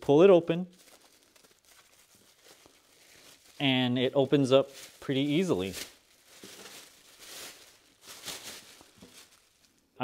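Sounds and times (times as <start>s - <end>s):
plastic bag rustling and crinkling: 0.7s - 10.0s.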